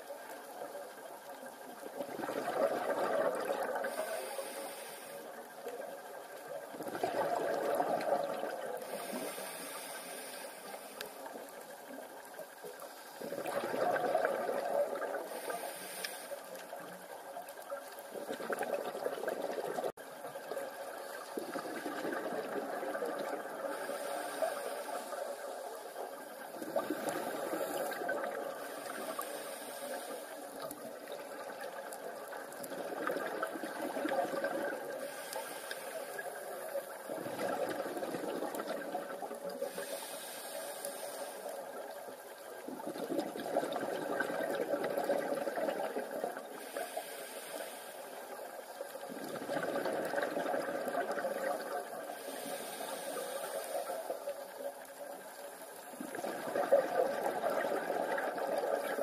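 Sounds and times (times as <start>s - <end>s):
diver regulator bubbles: 1.8s - 4.6s, 5.7s - 9.5s, 13.2s - 15.8s, 17.7s - 40.1s, 41.2s - 47.2s, 48.9s - 54.1s, 55.9s - 59.0s
steady hiss: 3.2s - 18.2s, 19.8s - 37.6s, 38.6s - 42.8s, 46.1s - 49.2s, 51.3s - 56.2s.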